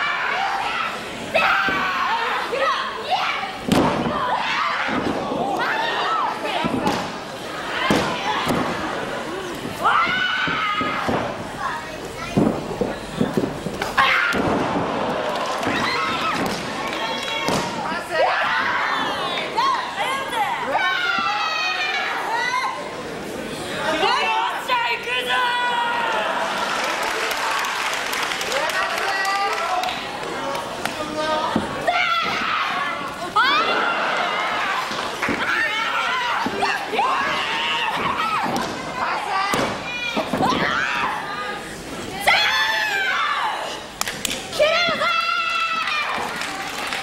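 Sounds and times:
crowd shouting and yelling: 0.0s - 47.0s.

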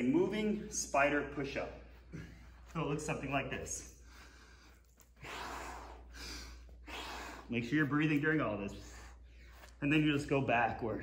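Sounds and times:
man breathing heavily: 1.8s - 2.8s, 3.8s - 9.8s.

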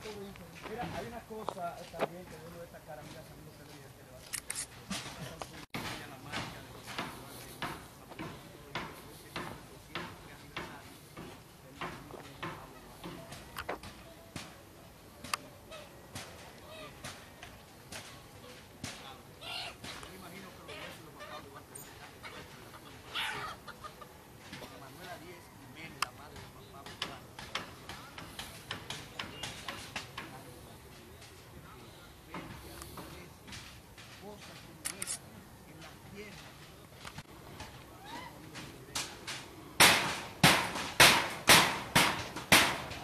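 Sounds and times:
chickens clucking: 19.4s - 25.9s
sharp knocks: 38.9s - 43.0s.

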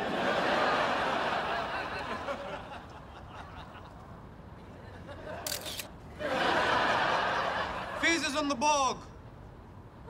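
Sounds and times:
audience laughing loudly: 0.0s - 3.9s, 6.2s - 8.0s
camera shutter click: 5.4s - 6.0s.

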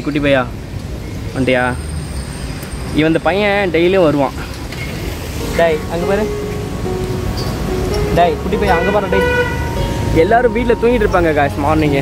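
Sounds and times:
road traffic: 0.0s - 12.0s
man talking: 5.4s - 6.4s, 8.0s - 12.0s
vehicle horn toot: 8.6s - 10.1s.

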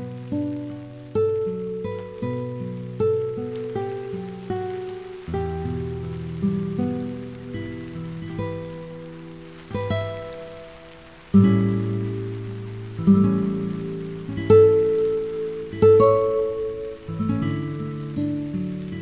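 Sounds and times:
slow plucked string music: 0.0s - 19.0s
steady rain falling: 0.0s - 19.0s.

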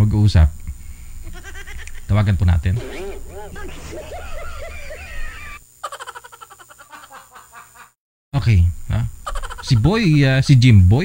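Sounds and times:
rapid pulsing tone: 2.8s - 5.6s.

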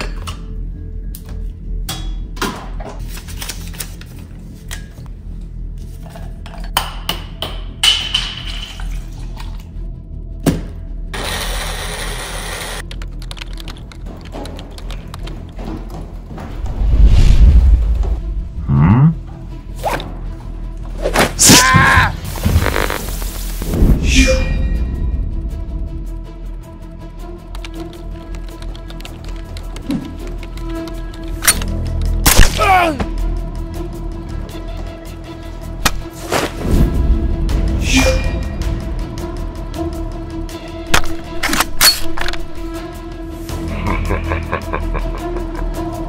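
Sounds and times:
background music: 0.0s - 46.0s
short vocal sound: 18.6s - 19.2s.

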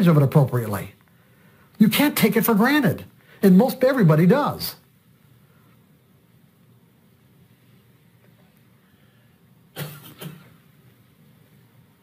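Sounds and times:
short coughs: 9.7s - 10.7s.

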